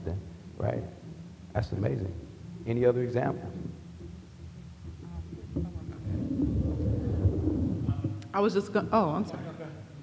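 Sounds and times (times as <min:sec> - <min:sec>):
microphone handling noise: 0:05.4 - 0:08.2.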